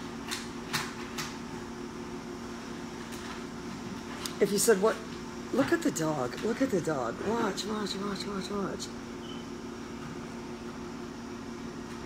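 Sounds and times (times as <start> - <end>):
steady hum with hiss: 0.0 - 12.0.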